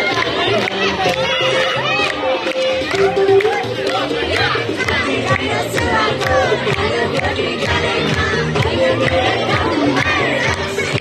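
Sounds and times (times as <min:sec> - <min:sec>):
children shouting and cheering: 0:00.0 - 0:11.0
dance song with steady beat: 0:00.0 - 0:11.0.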